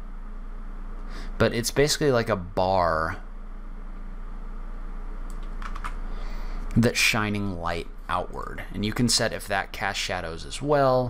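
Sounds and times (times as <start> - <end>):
steady low hum: 0.0 - 11.0
computer clicks: 5.3 - 6.0.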